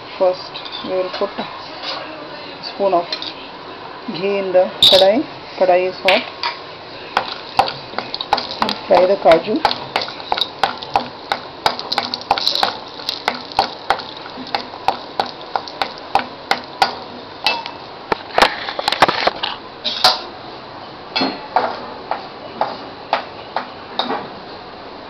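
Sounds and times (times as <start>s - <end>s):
faint sizzle of frying: 0.0s - 20.3s.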